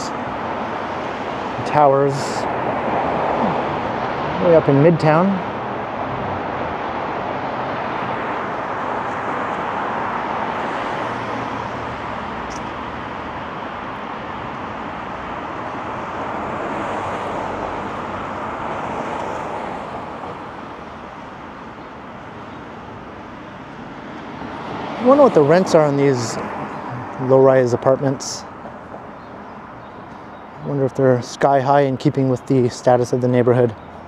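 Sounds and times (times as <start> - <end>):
cars passing on a street: 0.0 - 34.0.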